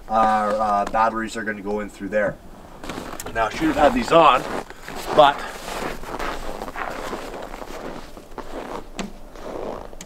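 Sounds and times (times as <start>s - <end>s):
footsteps crunching on snow: 2.7s - 10.0s.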